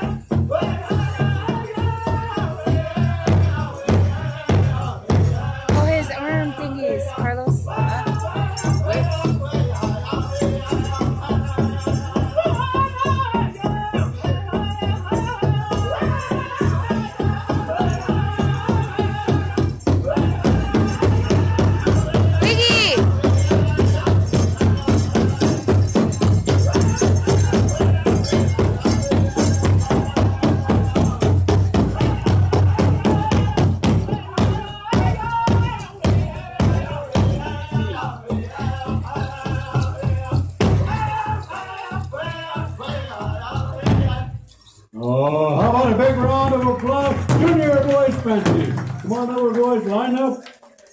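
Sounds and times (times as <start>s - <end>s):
big drum pounding: 0.0s - 44.3s, 45.6s - 49.2s
drum group singing: 0.0s - 49.3s
ankle bells jingling: 0.0s - 50.9s.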